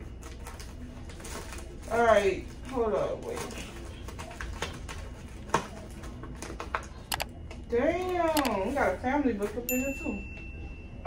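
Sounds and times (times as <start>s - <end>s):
papers handled in a bag: 0.0s - 7.0s.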